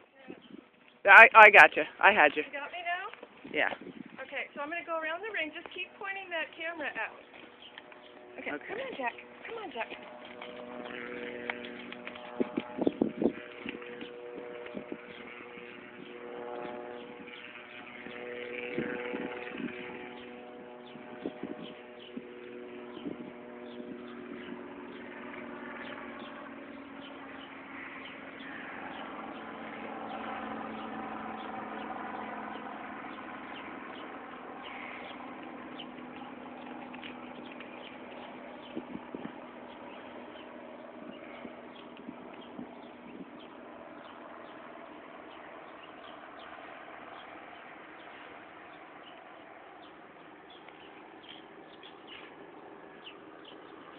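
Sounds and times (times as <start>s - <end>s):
engine-like hum: 0.0s - 53.9s.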